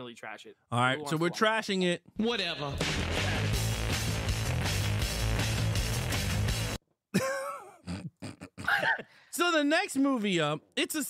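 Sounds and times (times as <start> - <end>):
man making non-word vocal sounds: 7.2 - 9.0.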